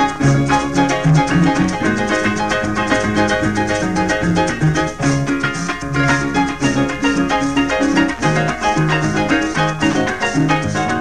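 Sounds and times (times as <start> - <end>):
bass line and rhythm accompaniment: 0.0 - 11.0
harp playing quick plucked runs: 0.0 - 11.0.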